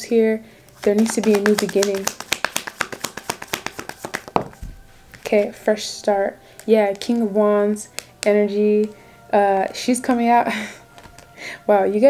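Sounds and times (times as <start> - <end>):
cards shuffled by hand: 0.7 - 5.4.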